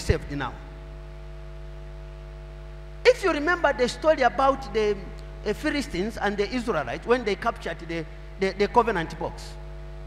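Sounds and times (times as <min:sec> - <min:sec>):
low mains hum: 0:00.0 - 0:10.0.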